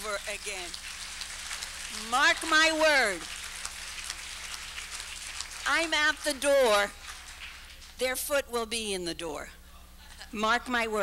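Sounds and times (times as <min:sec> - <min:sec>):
crackling room noise: 0:00.0 - 0:11.0.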